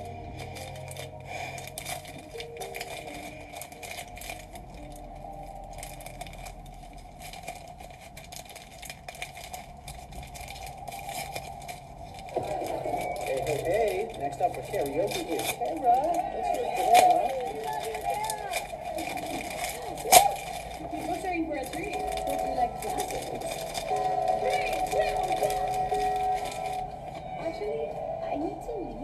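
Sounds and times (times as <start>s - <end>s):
faint background music: 0.0s - 29.0s
small clicks and rustles of handling: 0.4s - 26.9s.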